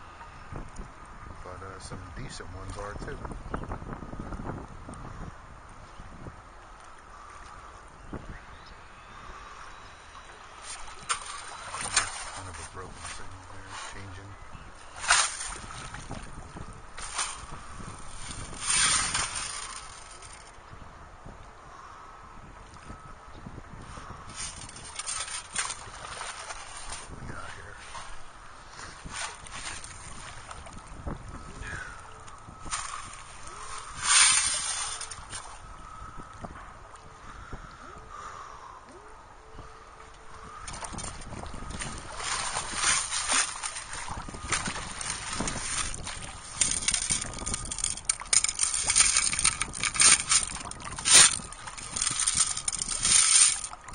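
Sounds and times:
shallow water splashing: 9.4 - 20.5, 24.2 - 36.0, 39.9 - 53.9
boots wading in water: 10.6 - 14.1, 24.4 - 27.2, 40.7 - 53.9.

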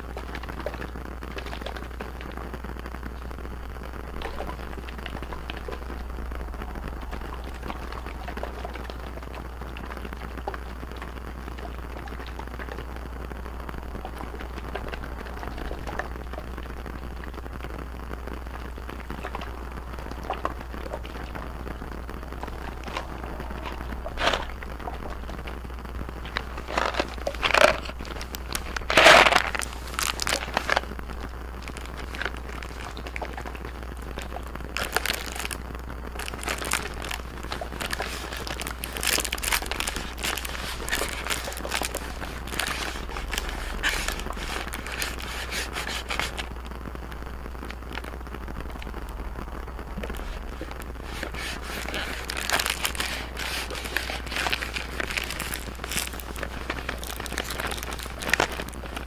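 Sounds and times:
plastic crinkling: 0.0 - 46.7, 47.6 - 59.0.

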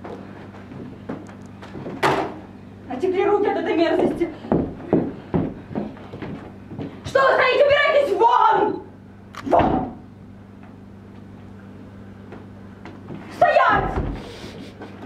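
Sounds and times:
heeled footsteps on stage floor: 0.0 - 2.1, 4.0 - 7.2, 12.2 - 14.9
steady low hum: 0.0 - 15.0.

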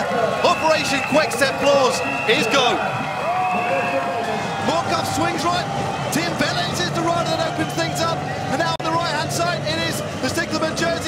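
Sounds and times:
faint music: 0.0 - 11.0
man sports commentary: 0.0 - 11.0.

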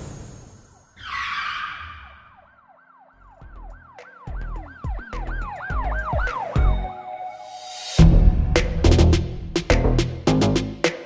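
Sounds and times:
warbling siren-like tone: 0.8 - 7.1.

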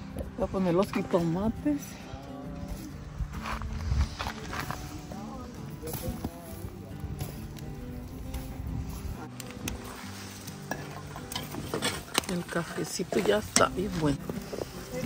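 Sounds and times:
coals crackling: 0.0 - 15.0
soft background music: 0.0 - 15.0
tomatoes sizzling on embers: 0.0 - 15.0.

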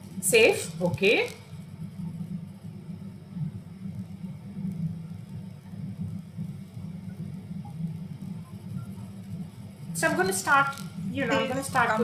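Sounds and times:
low steady rumbling: 0.0 - 12.0.

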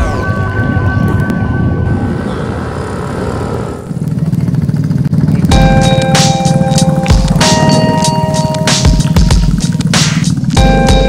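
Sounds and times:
motorcycles passing: 0.0 - 11.0
small engine running: 1.9 - 11.0.

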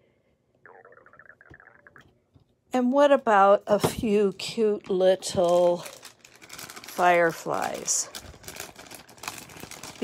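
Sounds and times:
plastic bag rustling: 4.3 - 10.0.

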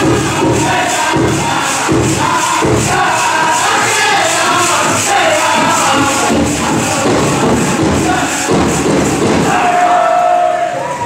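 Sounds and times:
steady big drum beat: 0.0 - 10.3
drum group singing: 0.0 - 11.0.

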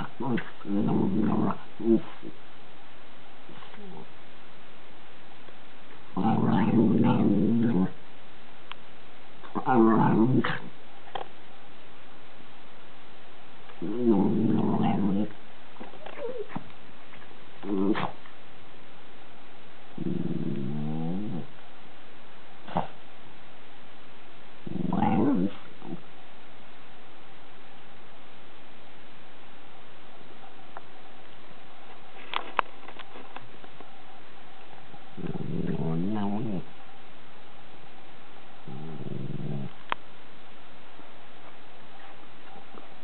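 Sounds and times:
dog grumbling whinily: 0.0 - 2.3, 6.2 - 8.0, 13.8 - 15.3, 16.0 - 16.6, 17.6 - 18.2, 20.0 - 21.5, 24.6 - 26.0, 35.2 - 36.7, 38.6 - 39.8.

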